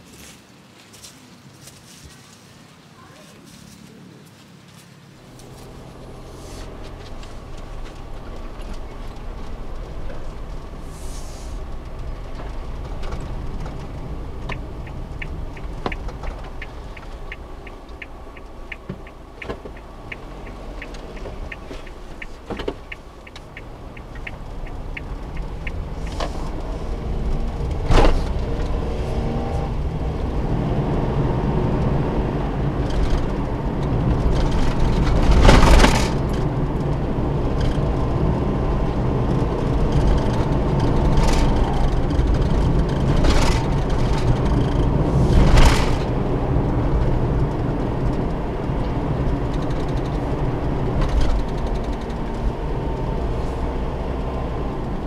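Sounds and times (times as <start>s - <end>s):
van engine and road noise: 0.0s - 55.0s
turn signal ticking: 5.3s - 55.0s.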